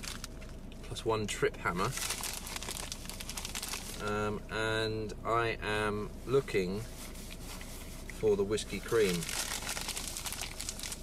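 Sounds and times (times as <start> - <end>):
bag crinkling and rustling: 0.0 - 0.5, 1.8 - 4.3, 8.7 - 11.0.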